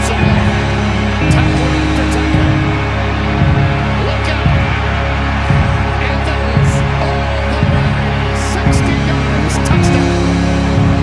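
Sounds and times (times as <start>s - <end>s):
music with steady beat: 0.0s - 11.0s
heavy low drum hits: 1.2s - 7.0s, 7.6s - 11.0s.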